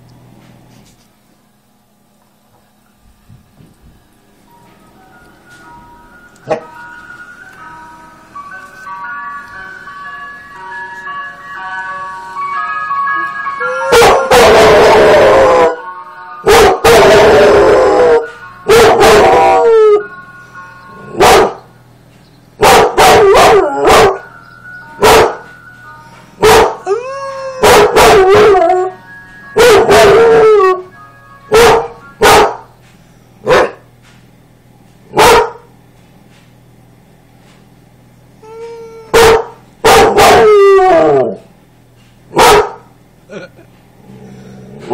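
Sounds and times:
ice cream van chime tune: 0:04.0 - 0:14.3, 0:15.1 - 0:22.6, 0:23.3 - 0:27.6, 0:28.2 - 0:34.7
dog howling and barking: 0:13.6 - 0:15.8, 0:16.4 - 0:20.0, 0:21.1 - 0:21.6, 0:22.6 - 0:24.3, 0:25.0 - 0:25.5, 0:26.4 - 0:29.0, 0:29.6 - 0:30.9, 0:31.5 - 0:32.6, 0:38.9 - 0:41.5, 0:42.3 - 0:42.8.

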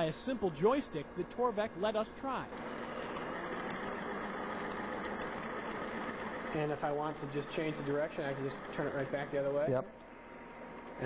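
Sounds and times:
electric motor running steadily: 0:00.0 - 0:11.0.

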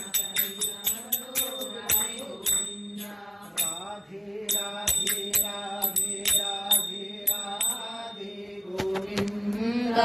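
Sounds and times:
ringing metallic strikes: 0:00.0 - 0:08.6.

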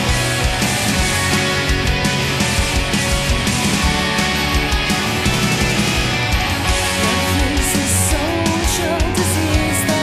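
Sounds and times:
gothic rock band: 0:00.0 - 0:10.0.

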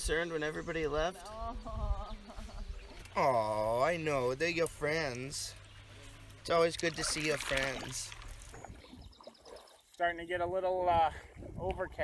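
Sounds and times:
water lapping against canoe hull: 0:05.6 - 0:10.2.

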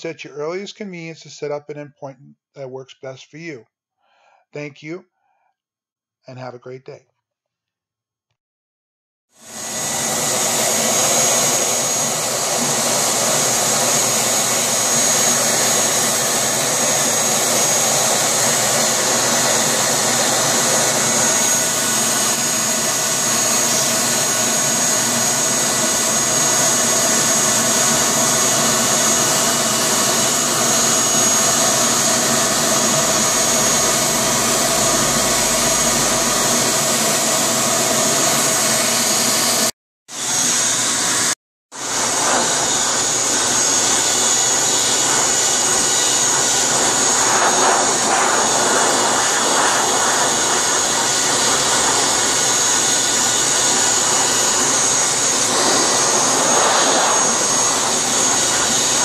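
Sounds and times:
shop vacuum whining: 0:09.4 - 0:59.0.

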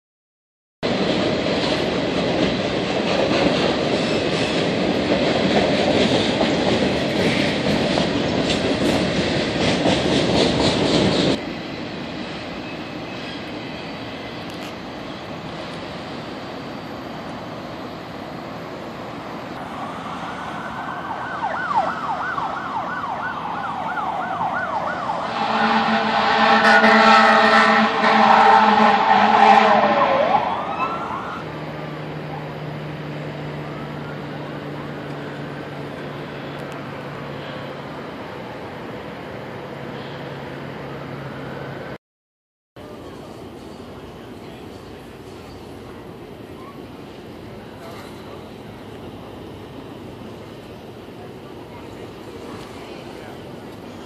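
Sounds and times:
train clattering past: 0:00.8 - 0:19.7, 0:25.1 - 0:42.0, 0:42.8 - 0:54.0
emergency siren wailing: 0:19.6 - 0:35.4
multi-tone horn chord: 0:25.2 - 0:30.3.

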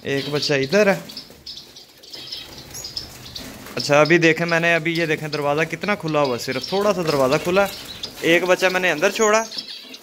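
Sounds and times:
finches chirping: 0:00.0 - 0:10.0.

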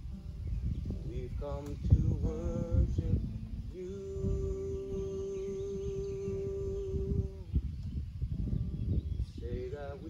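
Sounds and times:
acoustic guitar: 0:00.0 - 0:10.0
man singing long note: 0:01.0 - 0:07.6.

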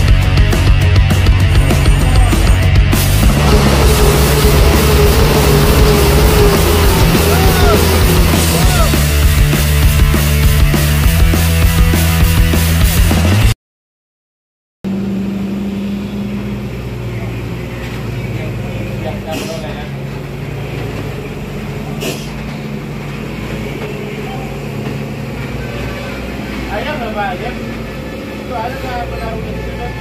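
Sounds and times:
diesel truck engine under load: 0:00.0 - 0:11.3, 0:14.9 - 0:30.0.

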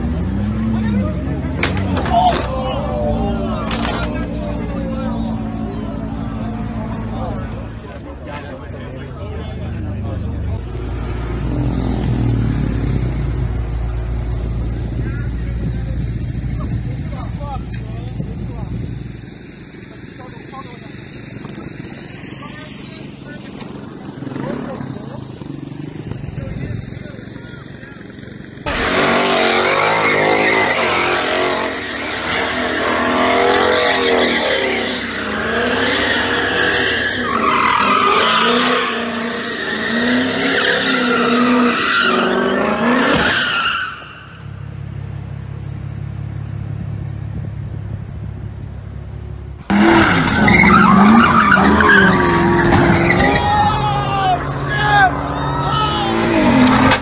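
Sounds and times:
tyres squealing and skidding: 0:00.0 - 0:18.1, 0:19.4 - 0:44.9, 0:49.7 - 0:57.0
engine running at low pitch: 0:00.0 - 0:28.9, 0:44.0 - 0:57.0
voices: 0:00.0 - 0:46.0, 0:49.8 - 0:57.0
car engines revving: 0:00.0 - 0:57.0.

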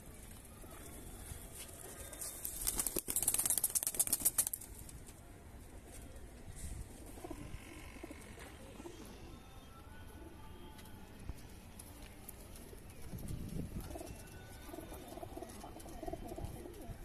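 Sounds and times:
pigeon wings flapping: 0:01.8 - 0:05.0
pigeons cooing: 0:13.8 - 0:17.0.

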